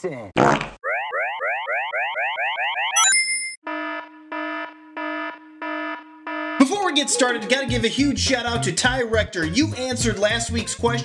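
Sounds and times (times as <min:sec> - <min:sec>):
rising cartoon chirps: 0:00.8 - 0:03.6
buzzy alarm beep: 0:02.0 - 0:06.6.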